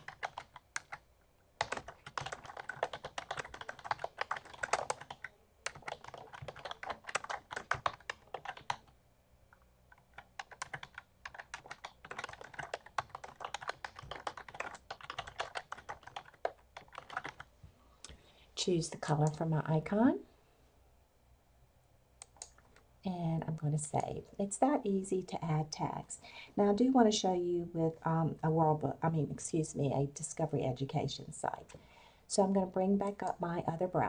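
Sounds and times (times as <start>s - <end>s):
typing on a computer keyboard: 0.0s - 1.0s, 1.6s - 8.9s, 9.9s - 17.5s.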